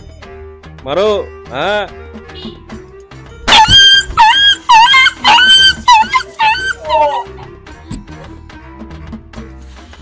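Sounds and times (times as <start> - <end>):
background music: 0.0 - 10.0
high dog-like yelps: 3.5 - 7.4.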